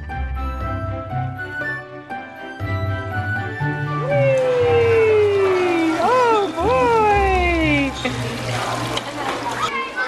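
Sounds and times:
water splashing and trickling: 4.1s - 10.0s
children's voices: 4.4s - 10.0s.

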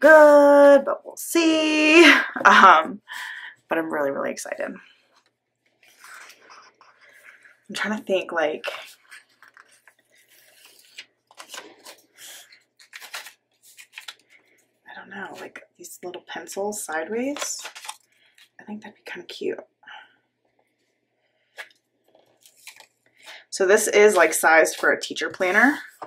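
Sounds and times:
paper rustling and tapping: 9.0s - 14.5s, 17.3s - 18.0s.

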